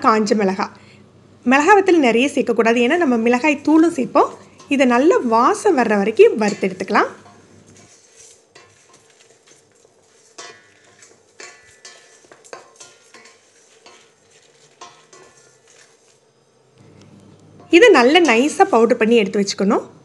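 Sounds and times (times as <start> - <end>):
spatula scraping pot: 3.0 - 16.4
seeds rattling against steel: 4.0 - 16.2.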